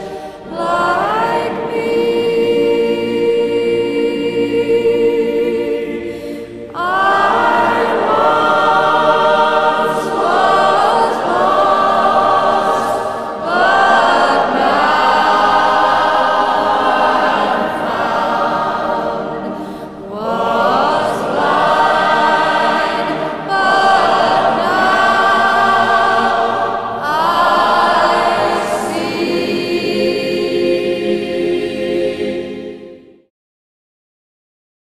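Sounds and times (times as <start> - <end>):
choir singing: 0.0 - 33.3.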